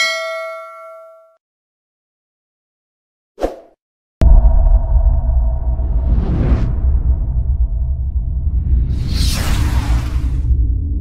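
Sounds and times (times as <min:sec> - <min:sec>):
bell chime notification: 0:00.0 - 0:01.3.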